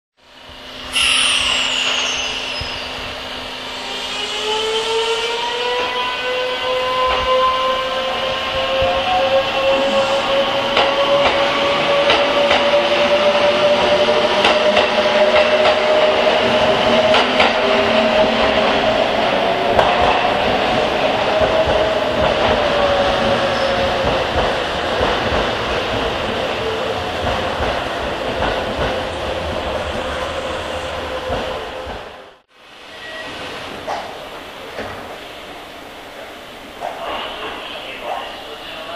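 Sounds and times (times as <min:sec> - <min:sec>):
electric train whine: 0:00.2 - 0:35.6.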